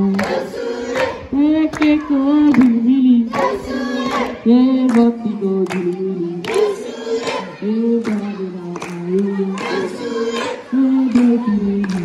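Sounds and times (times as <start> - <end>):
group singing over loudspeaker: 0.0 - 12.0
hand claps: 0.1 - 10.0, 11.1 - 12.0.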